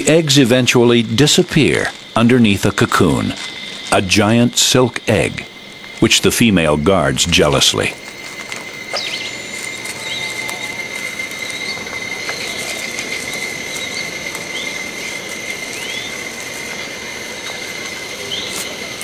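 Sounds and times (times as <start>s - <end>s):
high-pitched insect drone: 0.0s - 19.0s.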